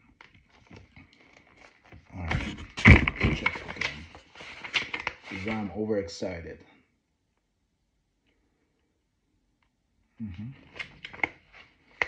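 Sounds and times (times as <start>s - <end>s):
paper rustling: 0.1s - 5.8s.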